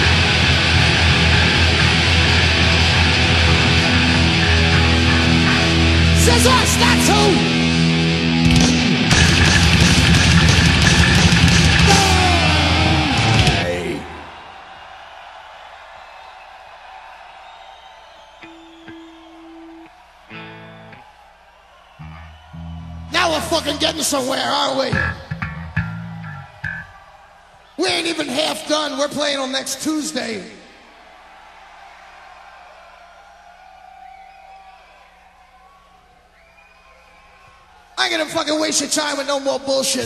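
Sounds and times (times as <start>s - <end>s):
audience noise: 0.0s - 39.0s
hall and crowd noise: 0.0s - 40.0s.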